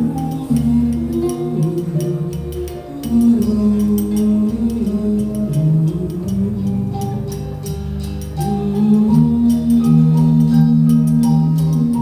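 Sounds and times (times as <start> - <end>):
music with held notes and bass: 0.0 - 12.0.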